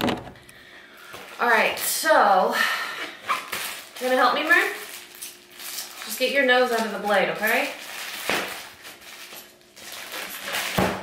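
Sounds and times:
plastic wrapping rustling: 0:00.0 - 0:02.0, 0:03.0 - 0:11.0
sharp plastic crackle: 0:03.2 - 0:11.0.

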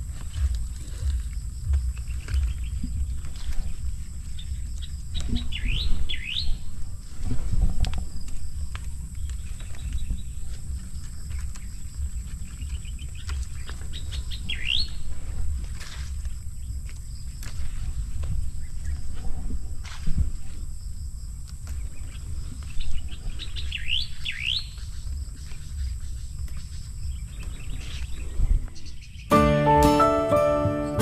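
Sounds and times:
bird calling: 0:00.0 - 0:06.8, 0:11.3 - 0:15.1.

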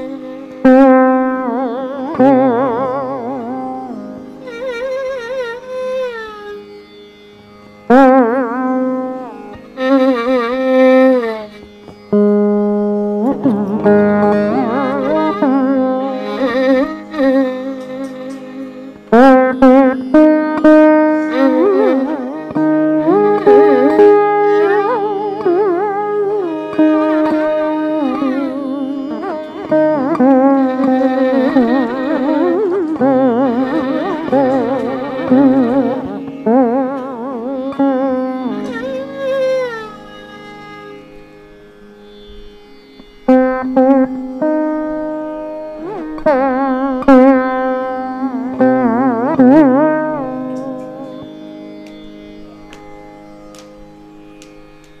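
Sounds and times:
slide lute note gliding: 0:00.0 - 0:55.0
tanpura drone: 0:00.0 - 0:55.0.

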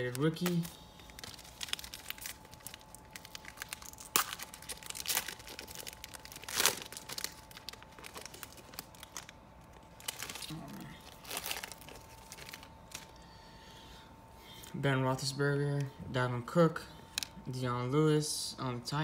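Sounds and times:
wrapper crinkling and tearing: 0:00.0 - 0:13.2.

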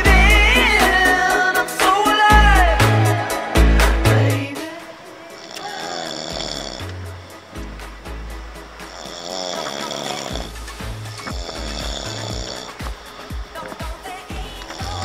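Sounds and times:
background music: 0:00.0 - 0:15.0
man snoring: 0:05.3 - 0:07.4, 0:08.8 - 0:15.0.

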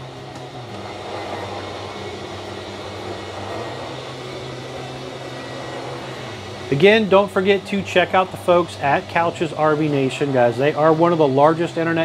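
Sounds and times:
electric motors whirring: 0:00.0 - 0:12.0.

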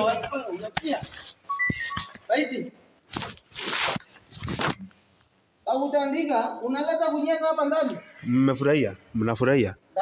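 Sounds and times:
short electronic beeps: 0:01.5 - 0:02.2.

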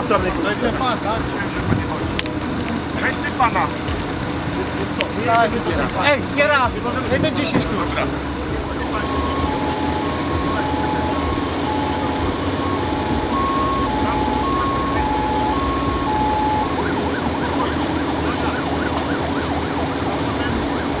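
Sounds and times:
idling engines hum: 0:00.0 - 0:21.0
two-tone emergency siren: 0:08.6 - 0:21.0.

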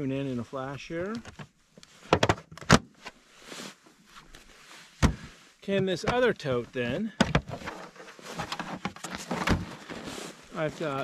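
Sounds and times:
short rustle: 0:03.0 - 0:05.6, 0:07.8 - 0:11.0.

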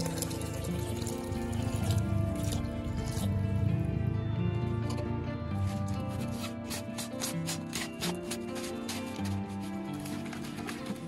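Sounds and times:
background music: 0:00.0 - 0:11.0
plastic jar lid twisting: 0:05.6 - 0:11.0.

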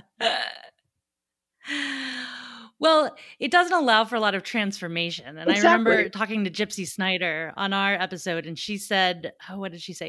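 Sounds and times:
drawn-out voiced sound: 0:05.5 - 0:06.1.

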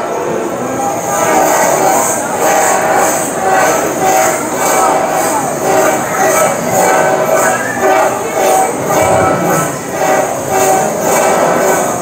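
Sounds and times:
mouth organs playing chords: 0:03.6 - 0:12.0.

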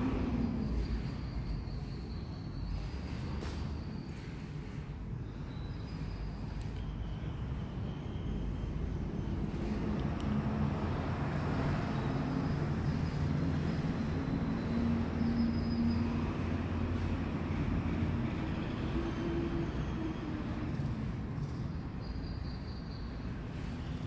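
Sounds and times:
traffic rumble: 0:00.0 - 0:24.0.

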